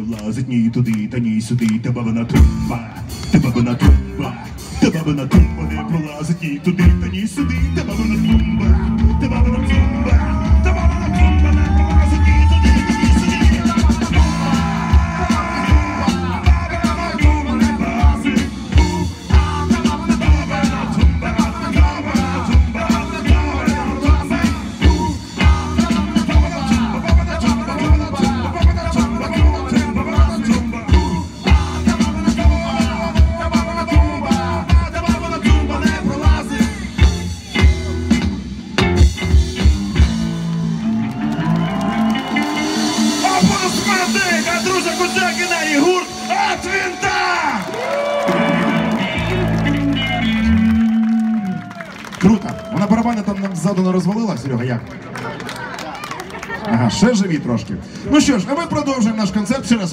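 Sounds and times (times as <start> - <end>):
bass guitar long notes: 0.0 - 52.7
live rock band playing: 2.2 - 53.7
electric guitar long notes: 7.6 - 52.0.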